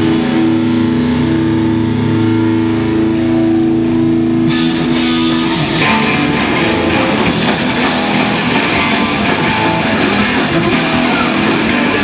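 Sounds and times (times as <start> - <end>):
distorted guitars droning chord: 0.0 - 12.0.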